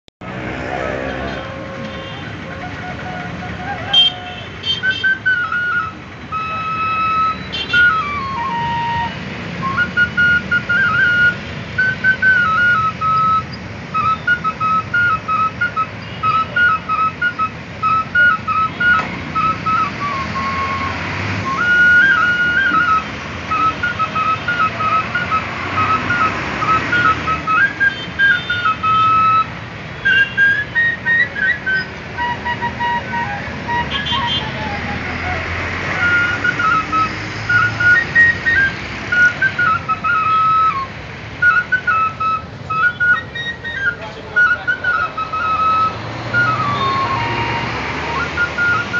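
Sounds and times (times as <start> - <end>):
street traffic noise: 0.0 - 48.9
flute melody: 0.6 - 48.9.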